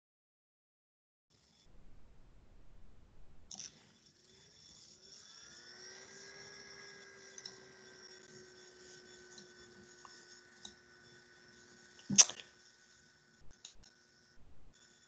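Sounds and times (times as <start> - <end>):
faint rising whine: 1.4 - 15.0.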